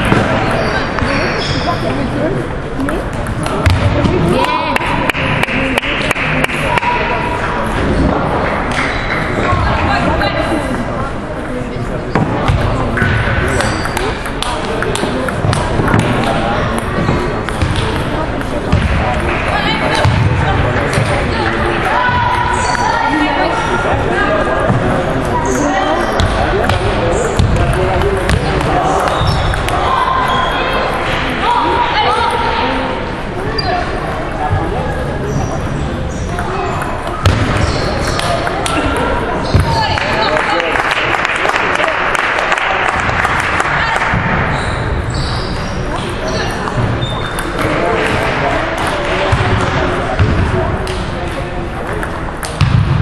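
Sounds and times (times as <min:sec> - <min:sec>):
background chatter in large hall: 0:00.0 - 0:53.0.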